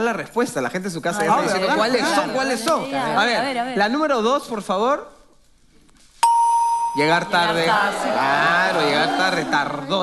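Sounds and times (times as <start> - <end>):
bright electronic ding: 6.2 - 7.3.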